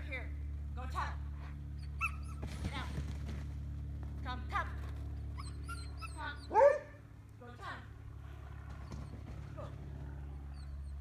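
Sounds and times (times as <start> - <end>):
steady low hum: 0.0 - 11.0
dog yipping: 1.8 - 2.4, 5.4 - 7.0.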